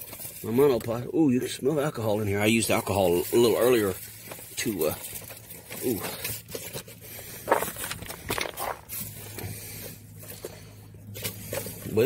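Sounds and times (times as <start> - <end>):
rummaging in car interior: 0.0 - 12.0.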